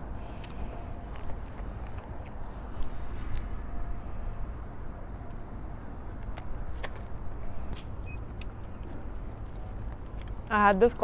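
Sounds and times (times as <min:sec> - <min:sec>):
city road traffic rumble: 0:00.0 - 0:11.0.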